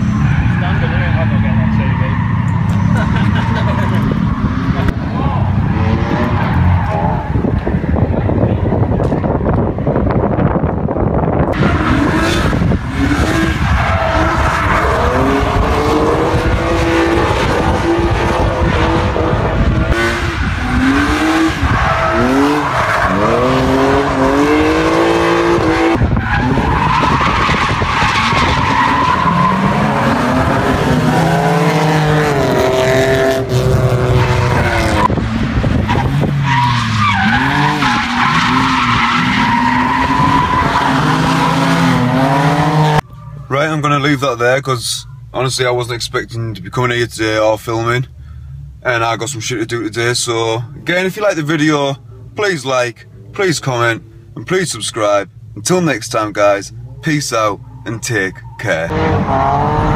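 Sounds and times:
tyres squealing and skidding: 0.0 - 8.0, 11.6 - 43.9, 56.7 - 59.9
car engines revving hard: 0.0 - 43.2, 48.0 - 59.9.

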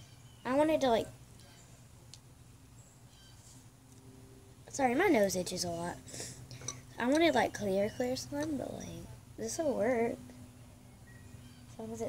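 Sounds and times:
distant birds chirping: 0.0 - 1.9, 2.6 - 12.0.

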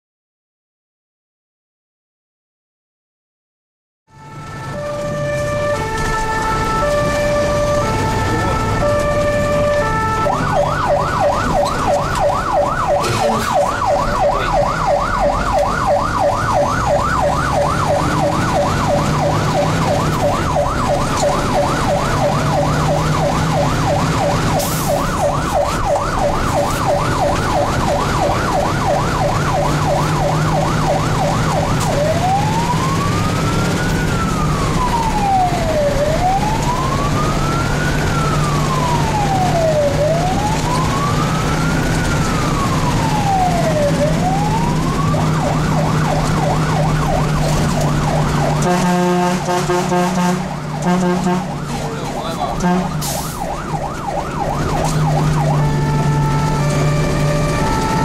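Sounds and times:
fire engine siren: 4.1 - 58.0
engine humming: 4.2 - 58.0.

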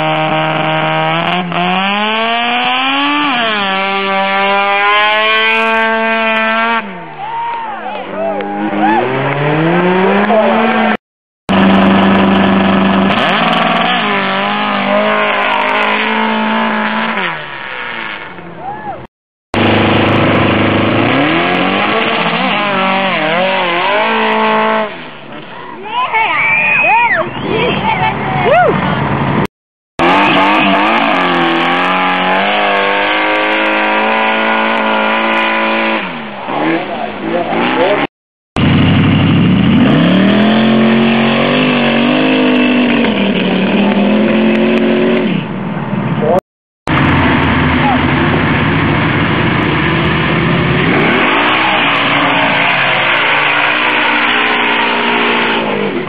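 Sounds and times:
engines revving at full throttle: 0.0 - 7.2, 8.0 - 18.6, 19.5 - 25.6, 27.4 - 56.0.

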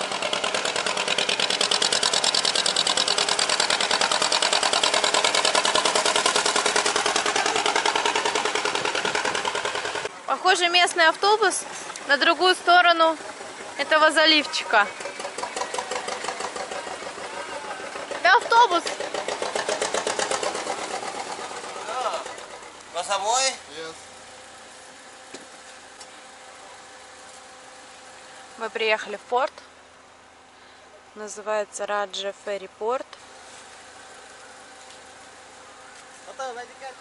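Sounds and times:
boat engine chugging: 0.0 - 24.7
car idling with faint whine: 0.0 - 37.0.

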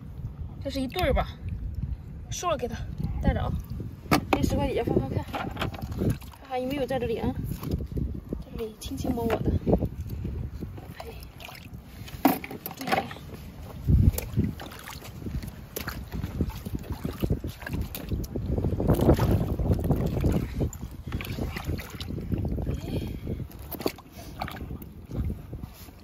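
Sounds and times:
water sloshing and splashing: 0.0 - 26.0
wind rumbling on microphone: 0.0 - 26.0.

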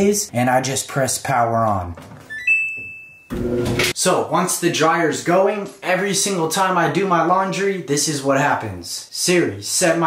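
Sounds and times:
dryer control panel beeps: 2.3 - 3.9.

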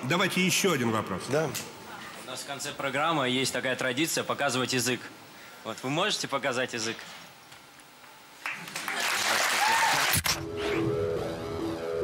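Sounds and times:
audience applauding: 8.4 - 10.4.

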